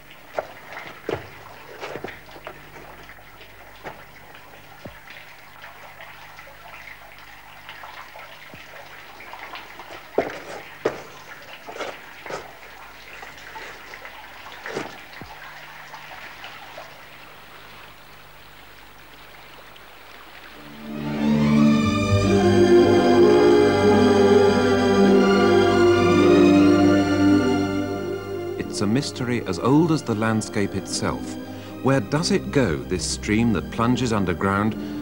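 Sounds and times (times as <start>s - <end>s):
sharp water drips: 0.0s - 21.0s
water trickling: 0.0s - 21.8s.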